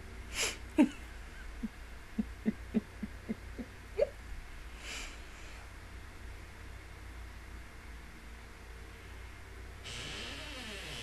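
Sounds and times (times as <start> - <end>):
woman's stifled chuckles: 0.4 - 4.2.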